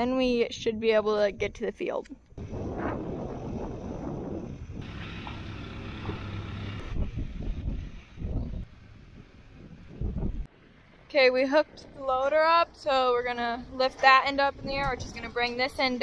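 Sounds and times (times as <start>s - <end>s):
wind buffeting microphone: 0.0s - 16.0s
tractor engine running: 4.8s - 11.1s.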